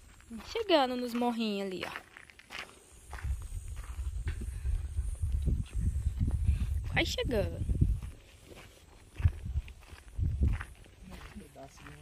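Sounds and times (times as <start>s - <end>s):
footsteps on dirt road: 0.0s - 12.0s
wind buffeting microphone: 3.0s - 8.3s, 9.1s - 11.3s.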